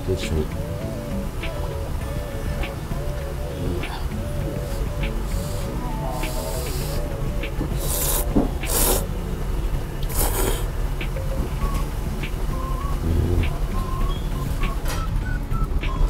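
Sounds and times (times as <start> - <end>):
quiet background music: 0.0 - 16.0
noodles being slurped: 7.8 - 9.1, 10.1 - 10.7.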